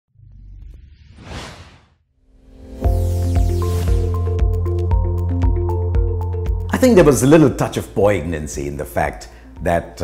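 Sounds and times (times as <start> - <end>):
whoosh: 0.6 - 2.1.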